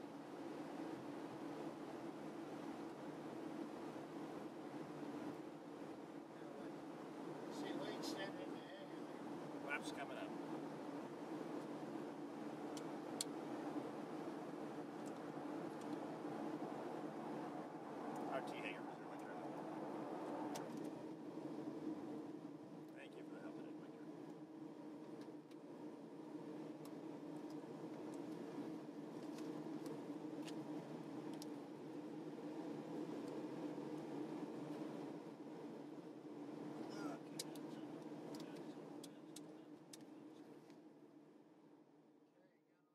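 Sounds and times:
turboprop engines droning: 0.0 - 42.8.

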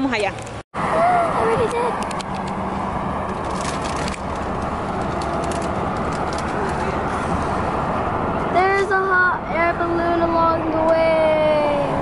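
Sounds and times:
car road and wind noise: 0.0 - 12.0.

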